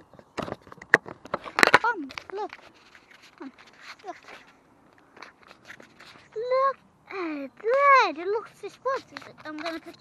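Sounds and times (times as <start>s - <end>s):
faint crunches and clicks: 0.0s - 10.0s.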